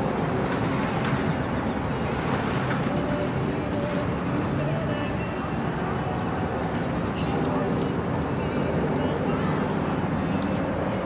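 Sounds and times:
road traffic hum: 0.0s - 11.0s
people talking: 2.9s - 11.0s.

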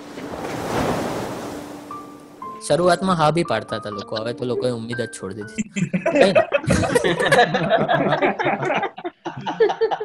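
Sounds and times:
faint held music notes: 1.9s - 6.4s.

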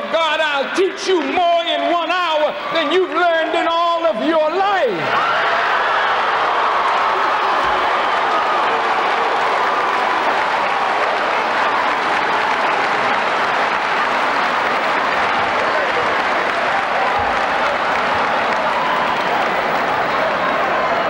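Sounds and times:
audience applauding: 5.0s - 21.0s.

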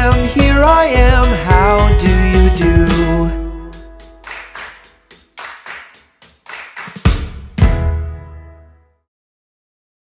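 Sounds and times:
hand claps: 4.2s - 7.4s.

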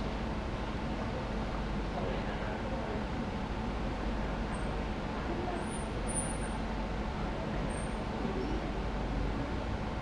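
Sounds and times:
air conditioning rumble: 0.0s - 10.0s.

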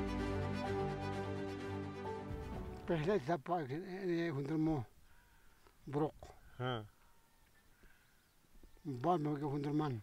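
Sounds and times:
man speaking: 2.8s - 4.9s, 8.9s - 10.0s.

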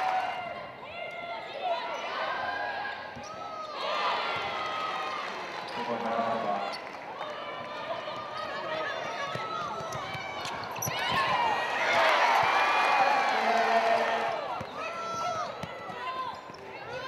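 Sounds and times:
players and spectators calling out: 0.0s - 17.0s.

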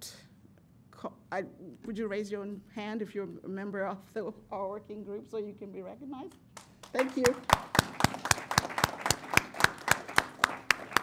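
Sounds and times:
person clapping loudly: 6.6s - 11.0s
small audience applauding: 6.6s - 11.0s.

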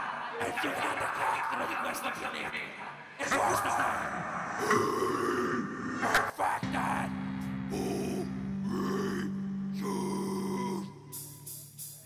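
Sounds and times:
guttural growls: 3.2s - 7.0s, 7.8s - 11.0s
death metal band low drone: 3.2s - 12.0s.

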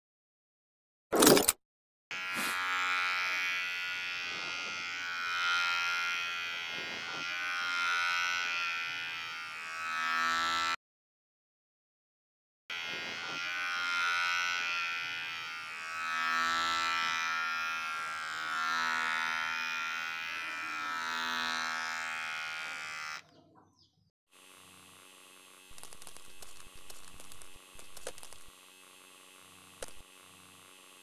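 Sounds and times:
rapid clicks and crackles: 25.6s - 28.7s, 29.8s - 30.1s.

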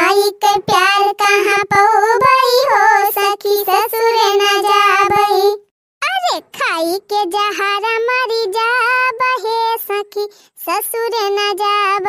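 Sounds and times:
high-pitched cartoon voice singing: 0.0s - 12.0s.

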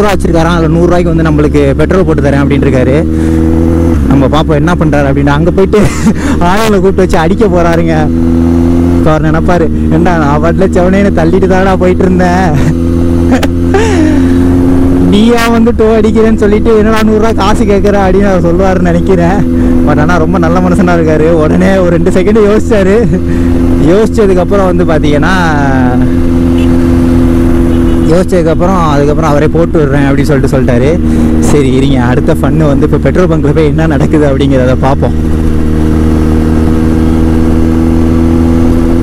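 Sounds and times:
motorcycle engine cruising: 0.0s - 39.0s
person speaking: 9.0s - 26.8s.

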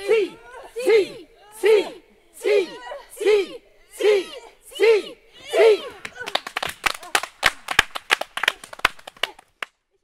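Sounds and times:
people clapping: 5.5s - 10.0s.

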